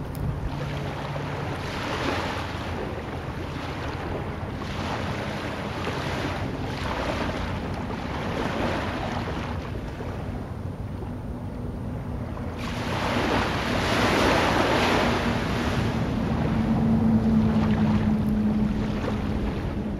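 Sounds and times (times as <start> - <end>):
low steady hum: 0.0 - 19.9
waves washing on sandy beach: 0.0 - 19.9
wind on microphone: 0.0 - 19.9.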